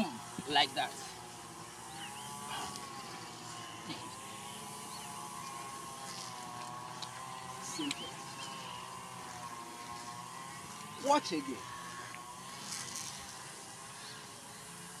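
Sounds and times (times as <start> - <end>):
engine drone: 0.0 - 15.0.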